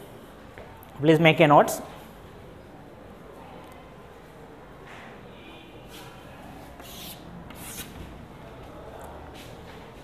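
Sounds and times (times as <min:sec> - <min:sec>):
scraping on a chalkboard: 0:05.9 - 0:08.1.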